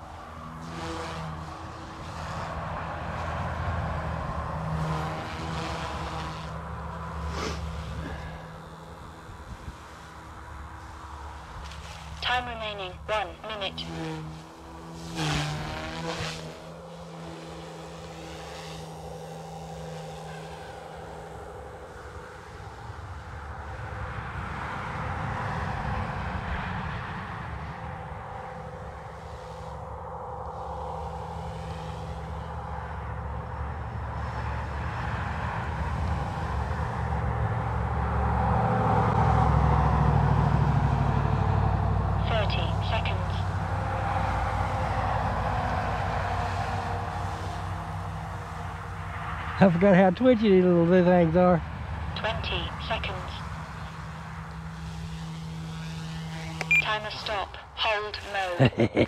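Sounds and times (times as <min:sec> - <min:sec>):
rc helicopter rotors whirring: 0:00.0 - 0:58.7.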